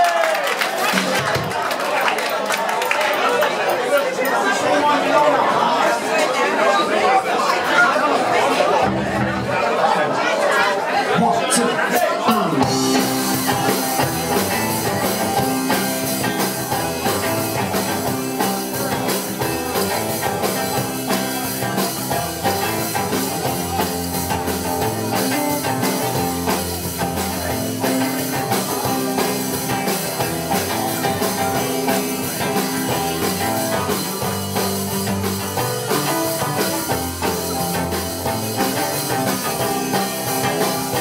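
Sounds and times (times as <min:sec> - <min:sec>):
electric guitars: 0:11.9 - 0:41.0
drum kit beat: 0:12.0 - 0:41.0
electric bass: 0:12.4 - 0:41.0.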